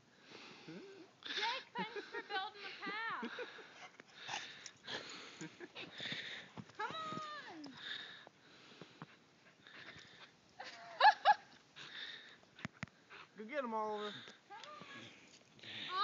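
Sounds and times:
heavy breathing: 0:00.1 - 0:10.4, 0:11.8 - 0:16.0.

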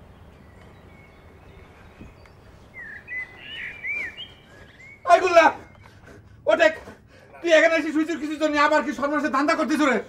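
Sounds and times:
bird chirping: 0:00.0 - 0:06.5
low outdoor background: 0:00.0 - 0:10.0.

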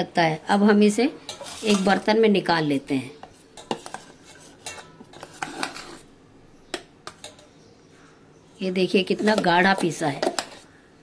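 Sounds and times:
spoon scraping steel jar: 0:01.2 - 0:02.1, 0:03.2 - 0:06.1, 0:09.0 - 0:10.8.

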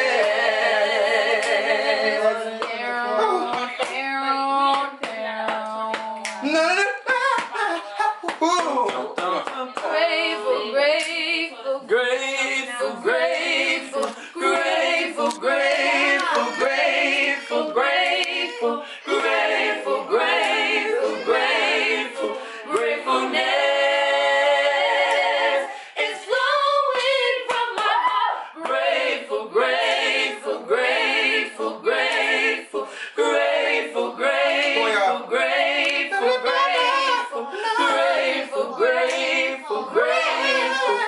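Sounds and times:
voices singing unaccompanied: 0:00.0 - 0:07.8, 0:08.9 - 0:41.0.

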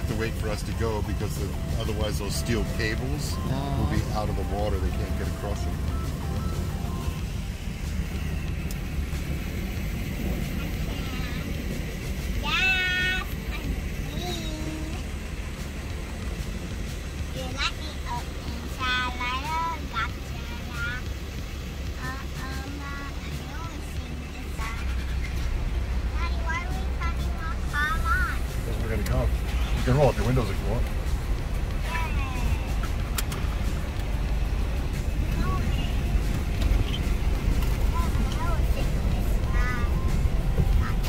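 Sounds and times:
indistinct voices: 0:00.0 - 0:08.4
vehicle engine and road rumble: 0:00.0 - 0:41.0.

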